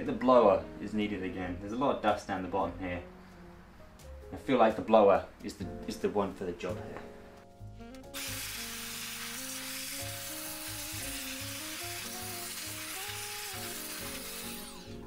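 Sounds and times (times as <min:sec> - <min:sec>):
background music: 0:00.0 - 0:15.0
electric dust blower running: 0:08.2 - 0:15.0.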